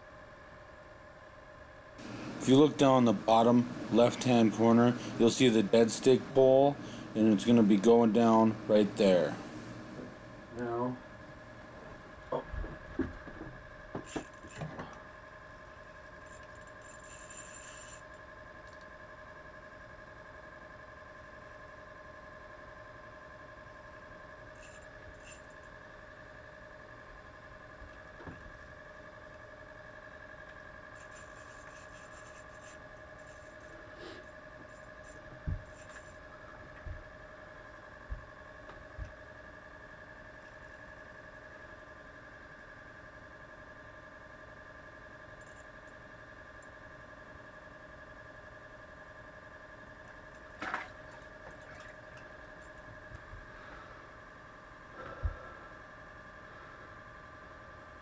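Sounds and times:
steady high whine: 0.0 - 58.0
fishing reel squeaks and scrapes: 16.2 - 18.1, 24.6 - 25.6, 31.0 - 33.7.

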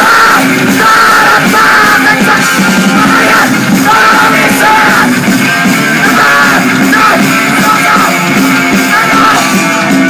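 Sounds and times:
vocalist yelling: 0.0 - 5.2, 5.8 - 9.6
punk band playing live: 0.0 - 10.0.

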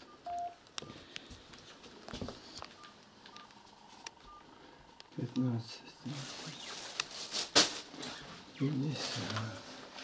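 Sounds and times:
electronic keypad beeps: 0.0 - 0.6, 2.8 - 3.6, 4.3 - 4.5.

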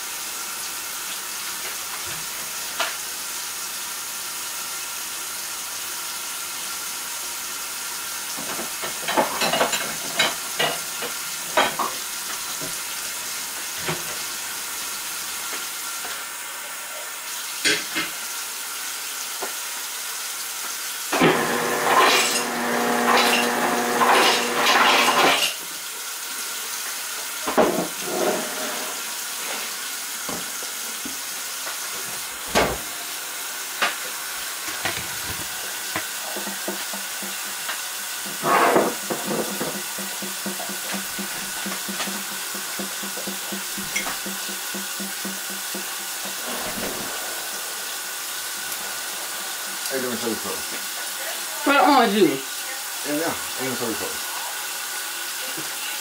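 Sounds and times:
pot of water hissing: 0.0 - 56.0
kitchen utensils clinking: 8.4 - 12.0, 21.2 - 25.6, 38.3 - 47.6.

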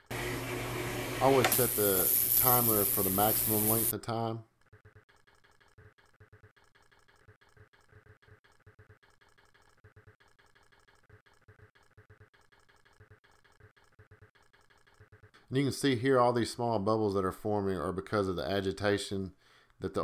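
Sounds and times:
ultrasonic cleaner buzzing: 0.0 - 3.9.

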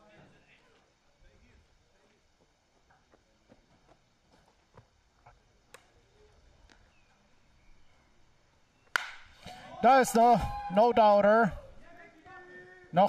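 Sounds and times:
bat hitting a baseball: 8.9 - 9.6
commentator speaking: 9.8 - 13.0.

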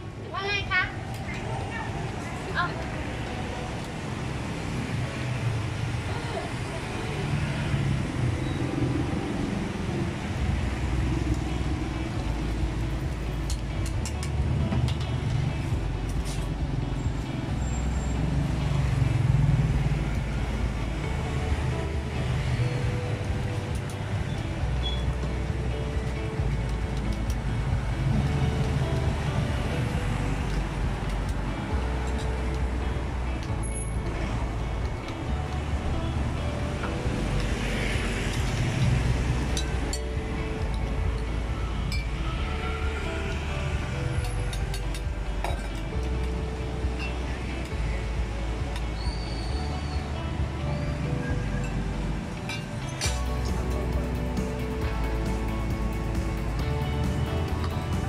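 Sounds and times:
car and truck engines rumbling: 0.0 - 58.0.

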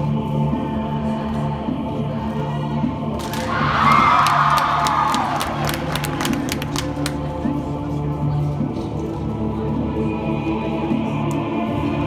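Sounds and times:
sharp claps or clicks: 3.2 - 3.6, 4.2 - 7.3
audience cheering: 3.5 - 6.6.

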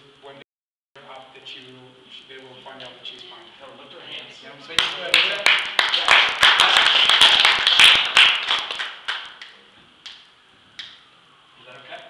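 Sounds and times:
people applauding: 4.7 - 9.6.

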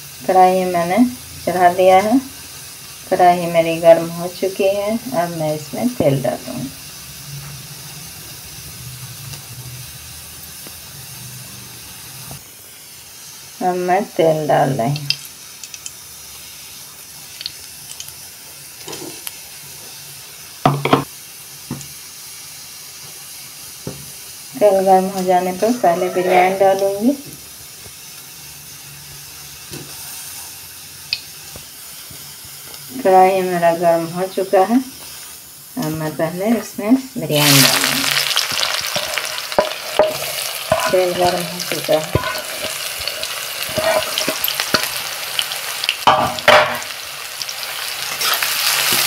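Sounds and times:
gas stove burner hissing: 0.0 - 49.0.

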